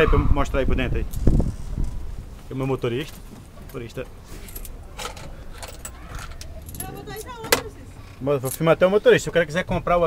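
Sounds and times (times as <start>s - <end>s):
small clicks and jingling rattles: 3.0s - 8.8s.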